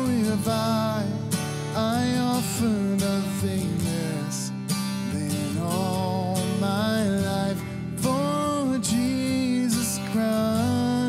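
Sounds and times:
man singing into a microphone: 0.0 - 11.0
strummed acoustic guitar: 0.0 - 11.0.

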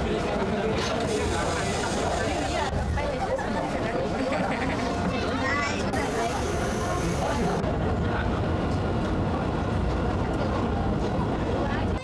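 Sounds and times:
passengers' voices: 0.0 - 12.0
subway train rumbling: 0.0 - 12.0.

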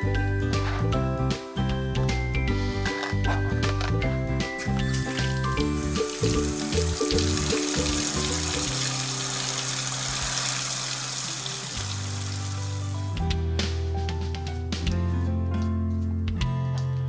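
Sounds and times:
cheerful background music: 0.0 - 17.0
running water hiss: 4.9 - 13.0.

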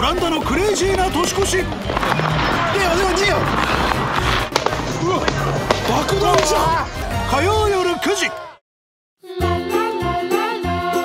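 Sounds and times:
firecrackers banging: 0.0 - 7.7
voices shouting: 0.3 - 8.6.

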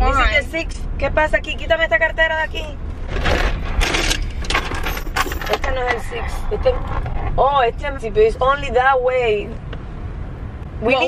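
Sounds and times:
car rumble while driving: 0.0 - 11.0.

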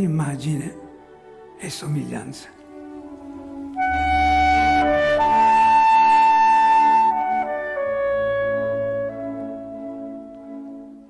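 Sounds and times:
sustained orchestral chords: 0.0 - 11.0
wind instrument melody: 0.0 - 11.0.

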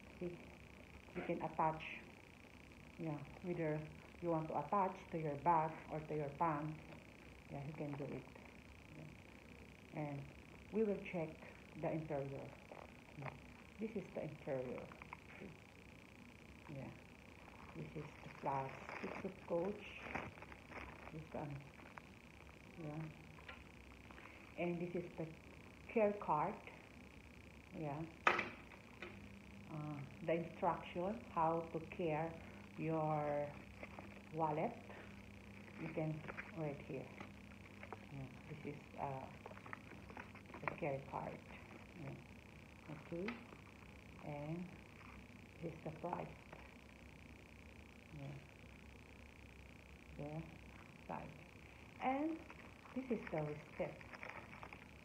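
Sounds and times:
faint high-pitched hum: 0.0 - 55.0
person speaking: 9.9 - 15.6, 16.6 - 22.0, 22.7 - 23.6, 27.7 - 28.2, 29.7 - 43.6, 44.2 - 44.8, 45.6 - 46.6, 48.1 - 48.5, 50.1 - 51.4, 52.0 - 54.8
plastic bag crinkling: 18.6 - 21.2, 53.3 - 55.0.

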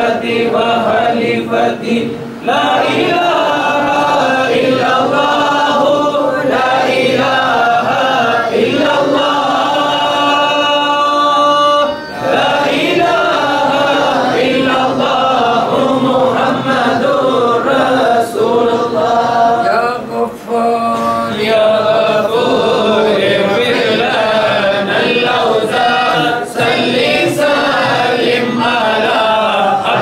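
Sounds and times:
men chanting in unison: 0.0 - 30.0.

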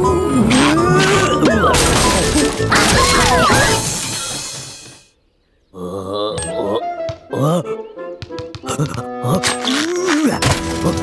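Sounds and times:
cartoon music: 0.0 - 3.9.

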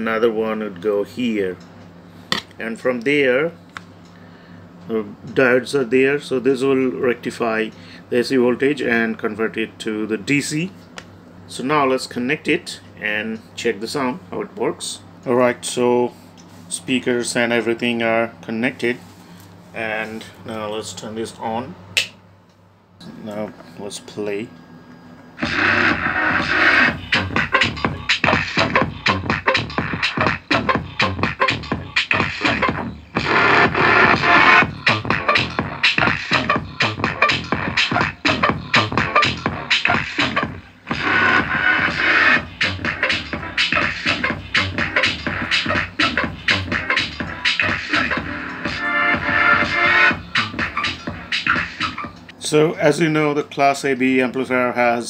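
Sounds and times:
electronic dance music beat: 25.4 - 52.3.

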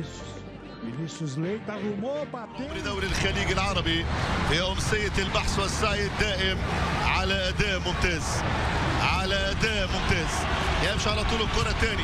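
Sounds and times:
football commentator talking: 1.0 - 12.0.

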